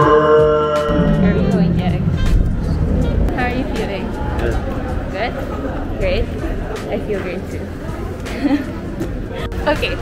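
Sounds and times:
background music: 0.0s - 10.0s
steady low rumble: 0.8s - 8.1s.

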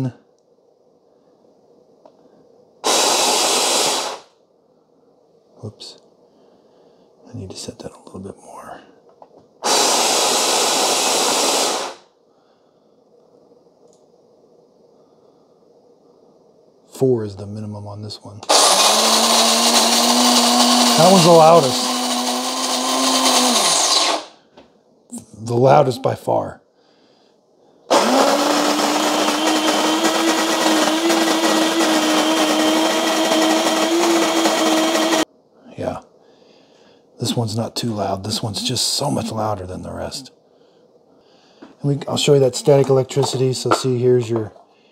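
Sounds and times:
coffee grinder grinding beans: 18.5s - 24.3s, 27.9s - 35.2s, 42.2s - 43.9s.

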